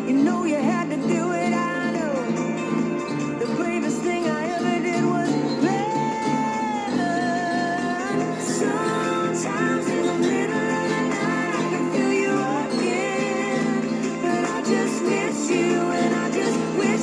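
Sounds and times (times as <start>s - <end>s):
acoustic guitar: 0.0s - 17.0s
man singing: 0.0s - 17.0s.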